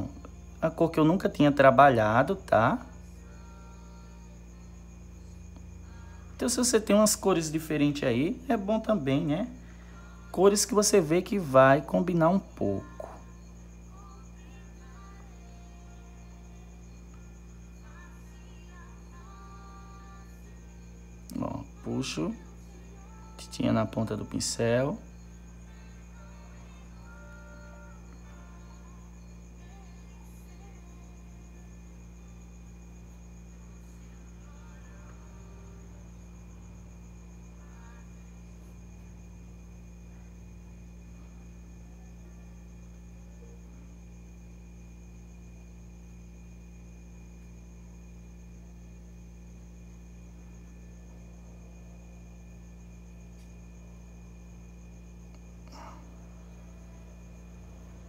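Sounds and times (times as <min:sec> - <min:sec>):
faint high-pitched whine: 0:00.0 - 0:58.0
low electrical hum: 0:00.0 - 0:58.0.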